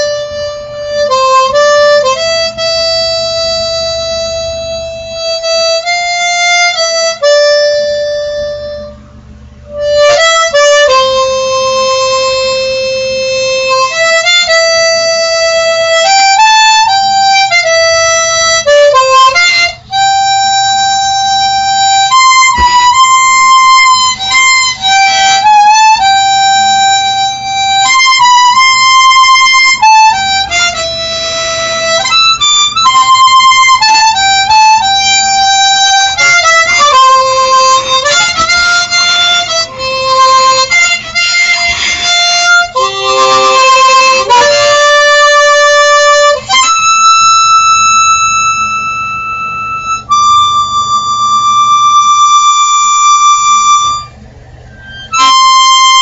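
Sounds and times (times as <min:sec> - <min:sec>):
harmonica melody: 0:00.0 - 0:56.0.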